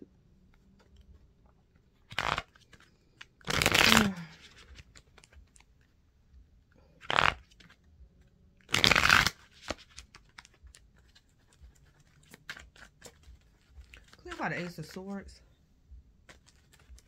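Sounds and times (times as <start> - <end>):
cards riffling: 1.9 - 5.9, 6.9 - 15.0, 16.2 - 17.0.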